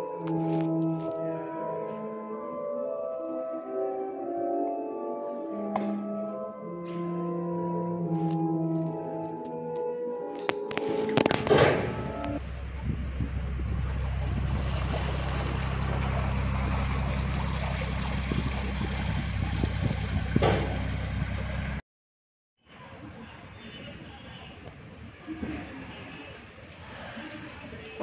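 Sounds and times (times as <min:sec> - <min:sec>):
boat engine humming: 0:10.6 - 0:21.8
water churning: 0:10.6 - 0:21.8.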